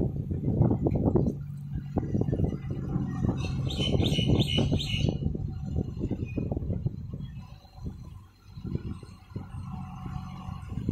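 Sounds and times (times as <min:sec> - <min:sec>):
steady low rumble: 0:00.0 - 0:10.9
bird chirping: 0:03.0 - 0:05.3.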